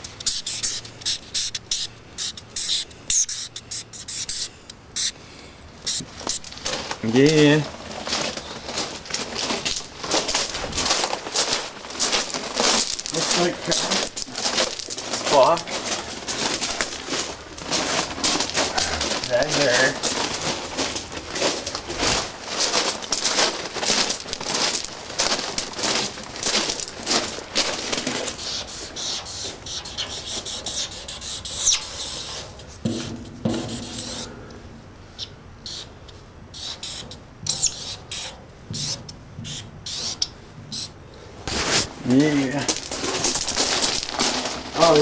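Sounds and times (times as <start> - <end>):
marker scratching on metal: 0.2 - 5.1, 28.4 - 34.3, 36.6 - 40.9
footsteps crunching on gravel: 6.0 - 29.6, 41.5 - 45.0.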